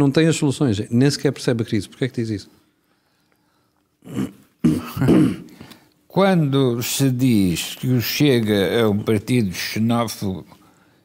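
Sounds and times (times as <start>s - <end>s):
man clearing his throat: 4.0s - 5.6s.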